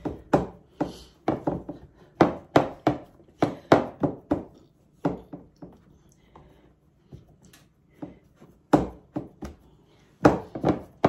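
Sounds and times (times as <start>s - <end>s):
dull thumps of dough pressing: 0.0s - 5.9s, 8.0s - 11.0s.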